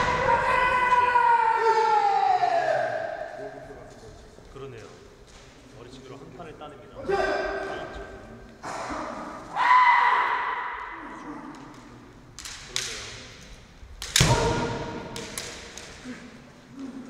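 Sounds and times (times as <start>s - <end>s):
shouts ringing through a hall: 0.0s - 3.9s, 7.0s - 12.0s.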